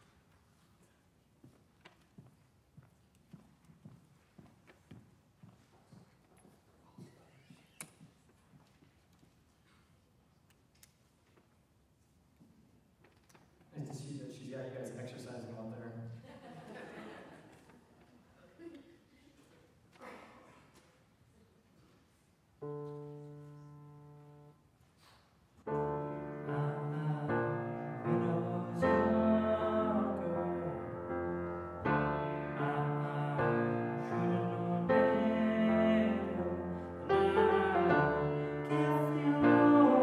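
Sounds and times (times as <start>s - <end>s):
high-heeled footsteps on stage floor: 1.4s - 9.6s
piano chord: 25.7s - 40.0s.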